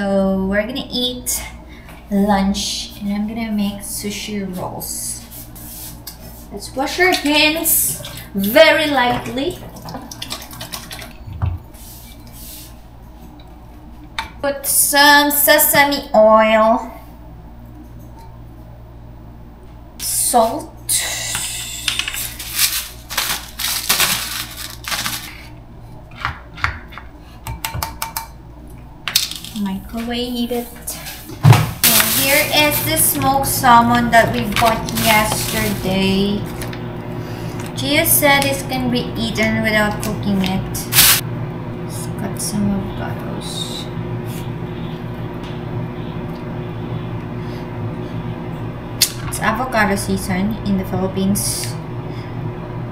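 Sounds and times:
appliance humming: 0.0s - 52.9s.

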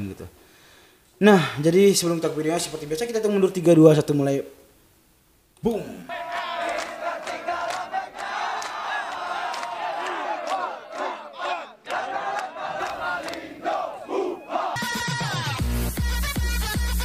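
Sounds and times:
men shouting and cheering: 6.0s - 15.6s.

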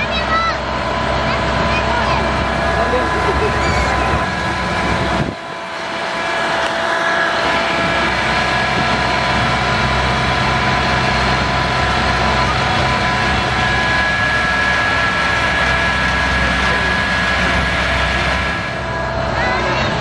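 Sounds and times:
tractor engine droning: 0.0s - 20.0s.

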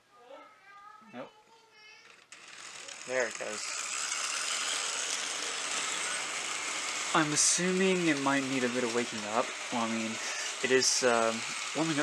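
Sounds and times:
model train motor whirring: 1.8s - 12.0s.

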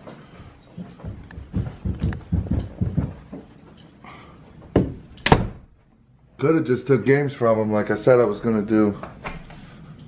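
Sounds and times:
heavy footsteps on floor: 0.0s - 3.9s, 4.5s - 5.9s
loud thunks: 4.7s - 5.7s.

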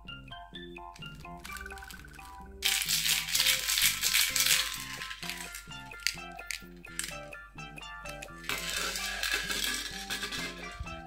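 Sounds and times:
light background music: 0.0s - 11.0s
baby rattle shaken hard: 1.4s - 7.1s, 8.4s - 10.7s.

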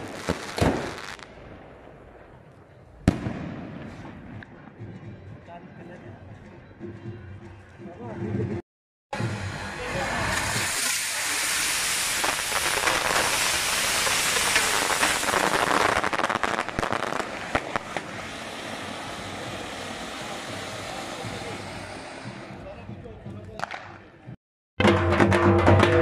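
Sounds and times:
sharp crackling of fireworks: 0.0s - 4.6s, 9.2s - 22.8s, 23.6s - 24.0s
firework fountains hissing: 9.2s - 22.8s.

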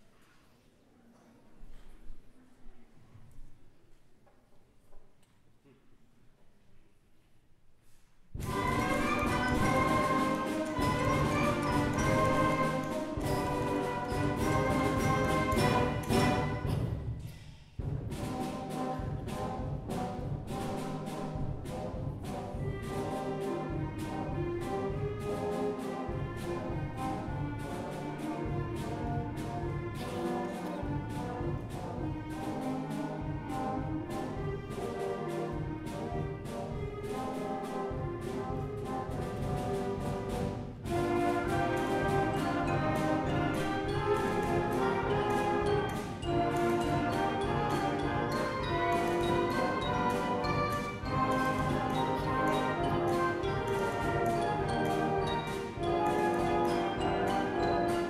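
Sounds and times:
percussion strokes: 8.3s - 58.0s
concert band playing: 8.4s - 17.0s, 18.1s - 58.0s.

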